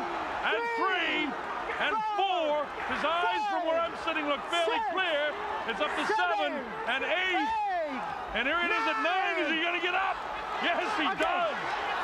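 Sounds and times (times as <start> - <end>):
arena crowd noise: 0.0 - 12.0
man speaking: 0.4 - 11.6.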